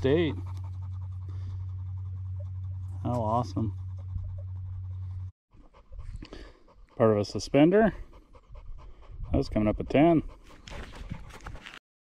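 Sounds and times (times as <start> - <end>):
steady low hum: 0.0 - 5.3.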